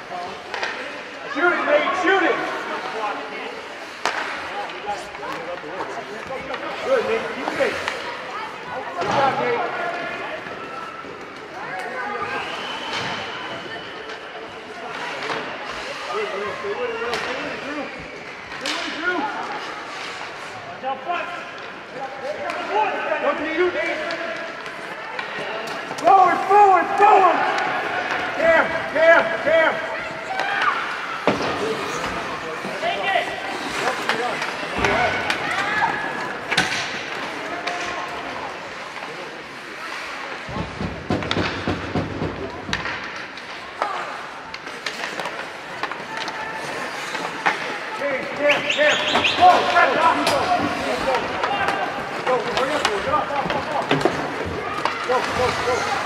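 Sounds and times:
hockey sticks and puck clacking: 0:00.0 - 0:16.3, 0:16.9 - 0:56.0.

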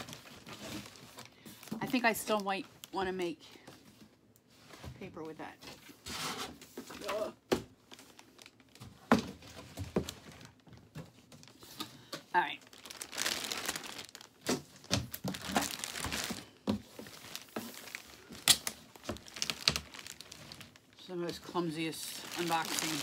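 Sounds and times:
plastic packaging crinkling: 0:00.0 - 0:03.0, 0:07.8 - 0:23.0.

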